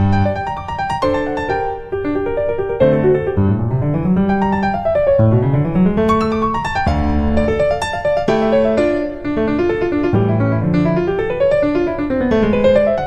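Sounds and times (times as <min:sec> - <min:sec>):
piano music: 0:00.0 - 0:13.0.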